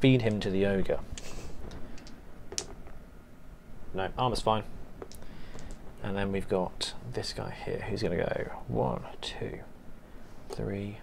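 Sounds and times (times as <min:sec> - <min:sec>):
dice rolling onto a mat: 0:01.2 - 0:03.0, 0:05.0 - 0:05.8.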